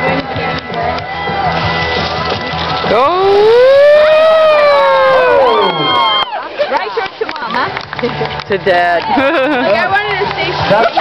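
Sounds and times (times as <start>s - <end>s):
spectators whooping and cheering: 1.0s - 2.0s, 2.9s - 7.1s.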